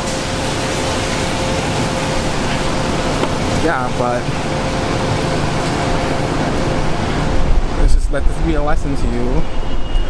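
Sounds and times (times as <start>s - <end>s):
falling rain: 0.0s - 9.0s
city traffic: 0.0s - 10.0s.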